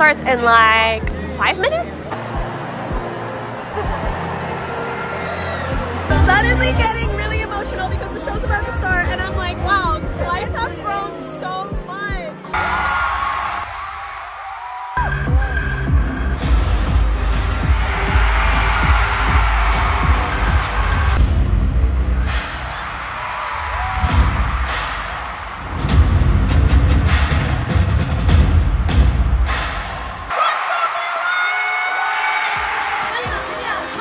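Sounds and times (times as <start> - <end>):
stadium crowd screaming: 2.1 - 6.8, 12.5 - 21.2, 22.2 - 26.0, 29.6 - 34.0.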